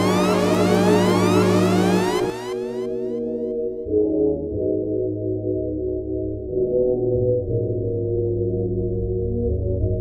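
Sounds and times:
rising sweeping tones: 0:00.0 - 0:03.2
held synth chords: 0:00.0 - 0:04.0
bass: 0:00.0 - 0:10.0.

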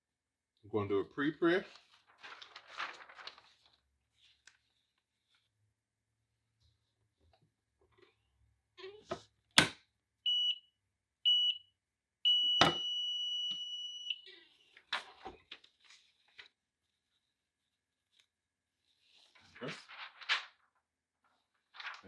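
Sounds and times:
timer beeps: 0:10.3 - 0:10.6, 0:11.3 - 0:11.6, 0:12.3 - 0:14.2.

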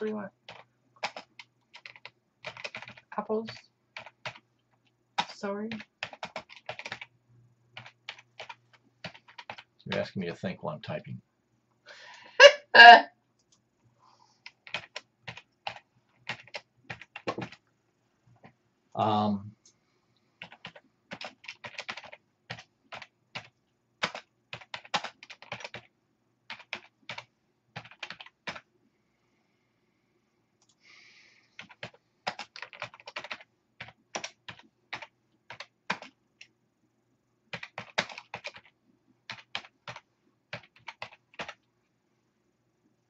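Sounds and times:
faint low hum: 0:00.0 - 0:43.0
typing on computer keyboard: 0:00.4 - 0:07.1, 0:07.7 - 0:10.1, 0:14.4 - 0:17.6, 0:20.4 - 0:25.9, 0:26.5 - 0:28.6, 0:31.6 - 0:36.5, 0:37.5 - 0:41.6.

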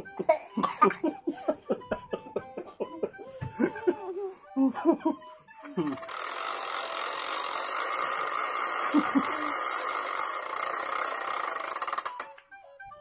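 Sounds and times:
spinner app rattling whir: 0:05.9 - 0:12.5.

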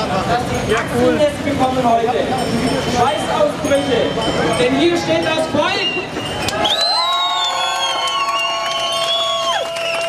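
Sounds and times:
crowd cheering: 0:04.9 - 0:10.0.

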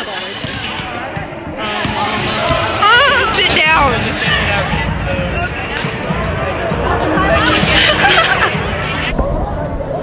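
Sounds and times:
voices in gym: 0:00.0 - 0:10.0.

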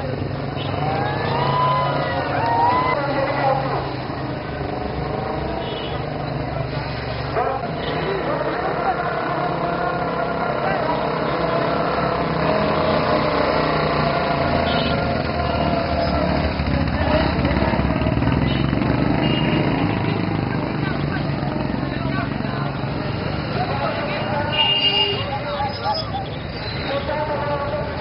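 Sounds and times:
motorcycles riding slowly past: 0:00.0 - 0:24.5
crowd chatter and shouts: 0:00.0 - 0:28.0.

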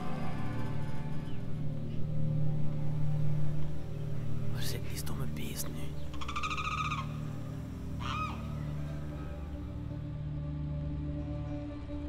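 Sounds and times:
low steady drone: 0:00.0 - 0:12.0
nasal honk-like call: 0:06.2 - 0:07.2, 0:08.0 - 0:08.6.

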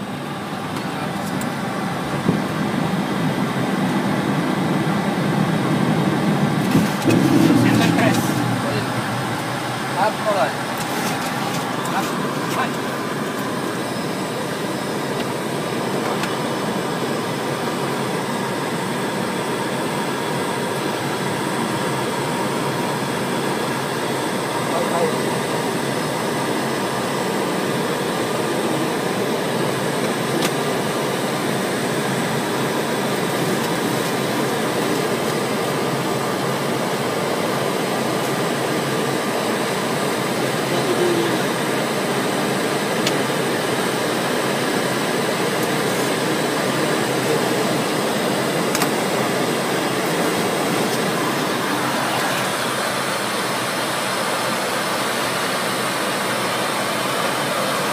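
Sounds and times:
aircraft cockpit engine rush: 0:00.0 - 0:57.9.

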